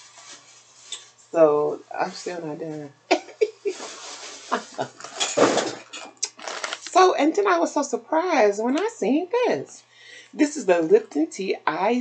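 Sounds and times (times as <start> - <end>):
woman laughing: 3.1 - 5.1
plastic bags crinkling: 3.4 - 7.1.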